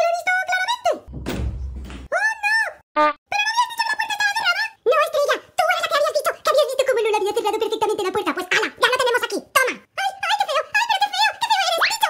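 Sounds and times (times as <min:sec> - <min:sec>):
wooden door thump and rumble: 0:01.1 - 0:02.1.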